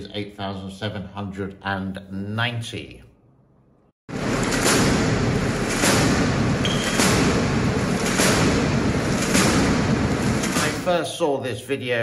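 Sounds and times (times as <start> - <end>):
anti-aircraft gun firing: 4.4 - 11.0.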